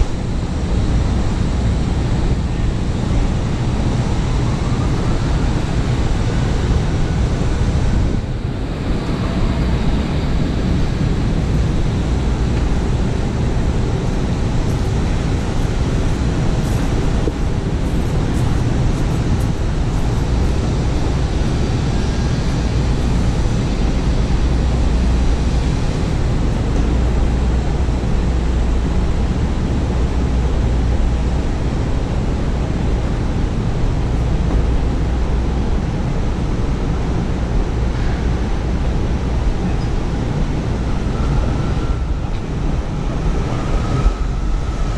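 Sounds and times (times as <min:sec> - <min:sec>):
low rumble of city traffic: 0:00.0 - 0:44.9.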